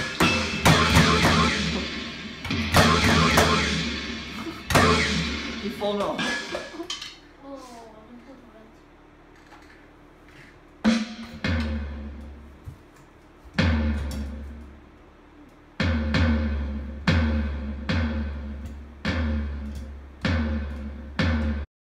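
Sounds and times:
electronic drum hits: 0.0s - 7.0s, 10.8s - 12.4s, 13.6s - 14.6s, 15.8s - 21.7s.

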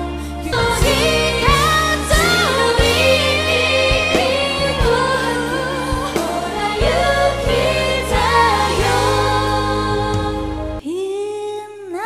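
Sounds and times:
backing track of steady chords: 0.0s - 10.8s
woman singing into a microphone: 0.0s - 12.0s.

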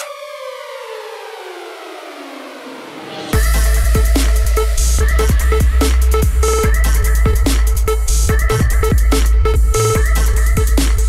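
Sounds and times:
synth tone gliding downward: 0.0s - 5.6s
drum and bass music: 0.0s - 11.0s.

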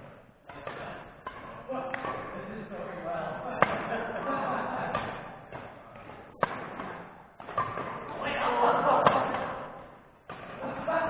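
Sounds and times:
racket striking shuttlecock: 0.0s - 2.4s, 3.4s - 10.9s.

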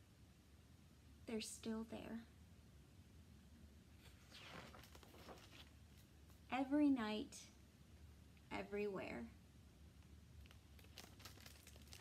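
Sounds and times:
low steady hum: 0.0s - 12.0s
book pages rustling: 4.0s - 6.1s.

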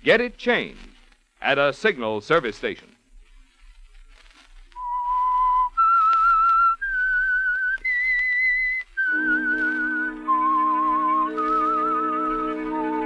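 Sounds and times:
person whistling slow melody: 4.8s - 13.0s
orchestra playing: 9.1s - 13.0s.

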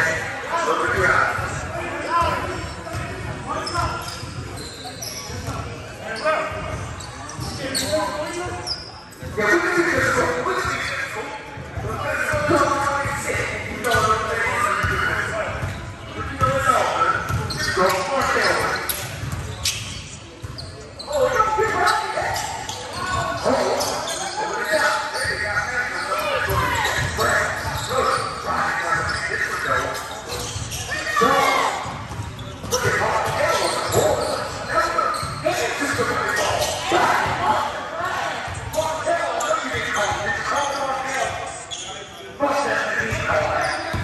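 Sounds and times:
indistinct shouts and chatter: 0.0s - 44.0s.

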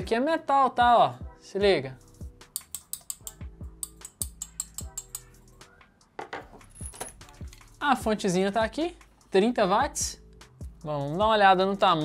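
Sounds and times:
background music with beat: 0.8s - 12.0s.

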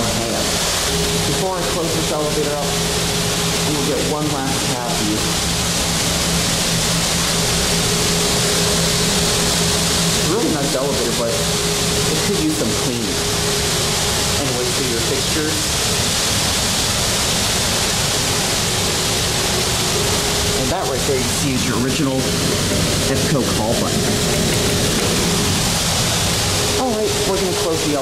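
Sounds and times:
loud rushing noise: 0.0s - 28.0s
low hum: 0.0s - 28.0s.

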